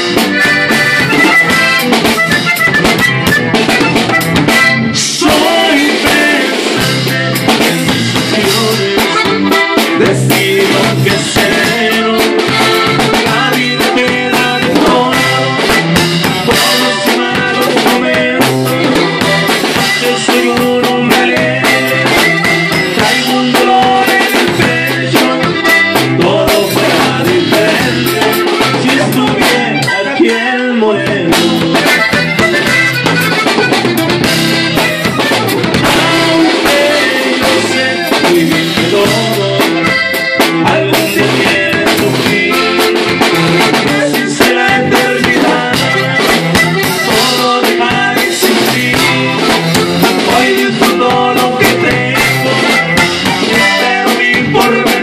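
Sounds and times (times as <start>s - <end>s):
bajo sexto guitar: 0.0s - 55.0s
button accordion: 0.0s - 55.0s
drum kit beat: 0.0s - 55.0s
electric bass: 0.0s - 55.0s.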